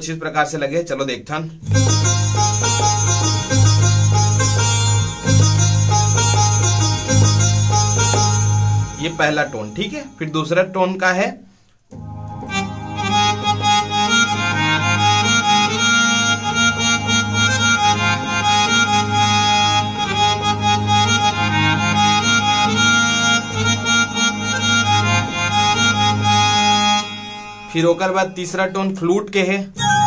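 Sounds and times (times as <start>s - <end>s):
reed organ tone synthesizer melody: 1.6s - 10.4s, 11.9s - 28.8s.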